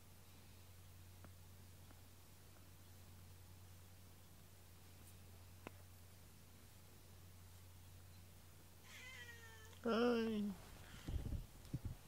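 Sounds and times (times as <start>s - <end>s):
cat meowing: 8.8s - 9.8s.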